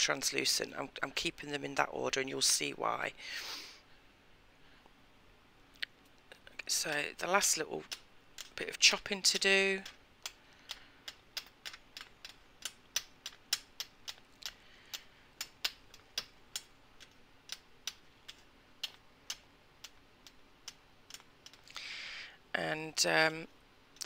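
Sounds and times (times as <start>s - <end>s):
blade clicking on hard surface: 9.3s - 21.6s.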